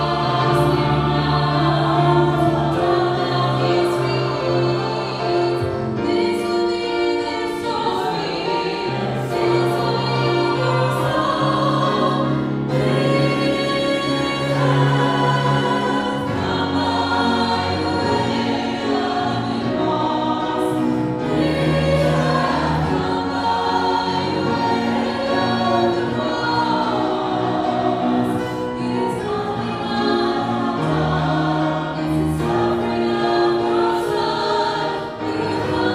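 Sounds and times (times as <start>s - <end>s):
church choir singing in harmony: 0.0s - 35.9s.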